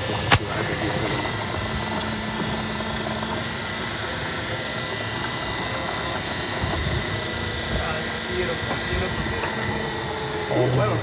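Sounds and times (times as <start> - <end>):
faint steady whine: 0.0 - 11.0
golf cart driving: 0.0 - 11.0.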